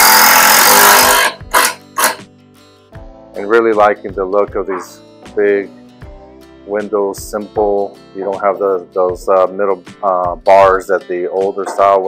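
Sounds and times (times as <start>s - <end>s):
power tool running in bursts: 0.0s - 2.2s
background music: 0.0s - 12.0s.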